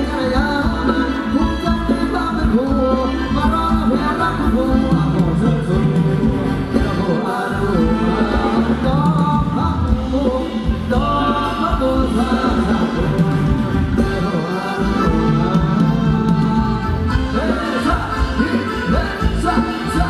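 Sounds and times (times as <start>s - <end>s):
live band dance song: 0.0s - 20.0s
person singing: 0.0s - 20.0s.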